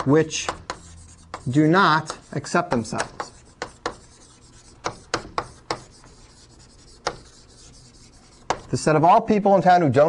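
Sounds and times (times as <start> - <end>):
chalk scraping on board: 0.0 - 8.9.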